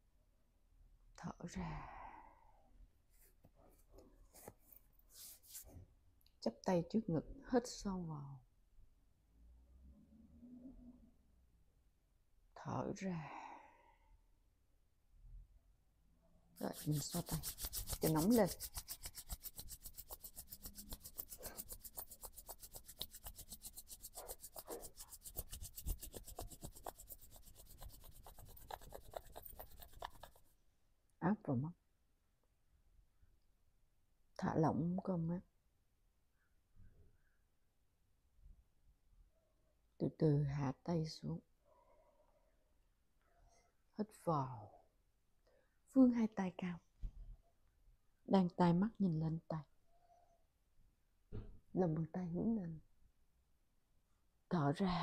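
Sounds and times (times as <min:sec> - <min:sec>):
hands and clothing rustling: 0:03.1 - 0:05.8, 0:16.6 - 0:30.4.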